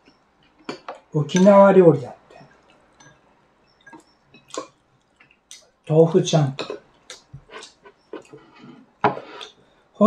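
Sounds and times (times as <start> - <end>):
chewing: 2.2 - 5.7, 6.6 - 9.6
breathing: 8.4 - 10.0.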